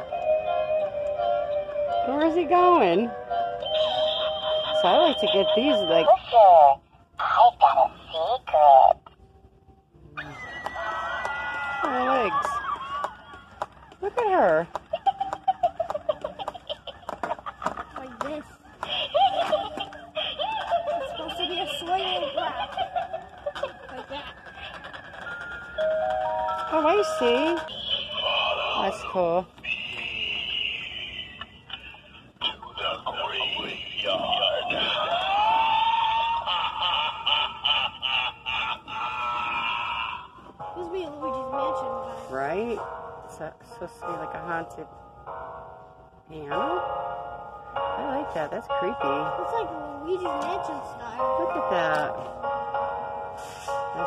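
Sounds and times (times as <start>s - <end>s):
eerie voice-like toy sound effect: 6.1s - 9.0s, 27.6s - 29.1s, 38.7s - 40.4s.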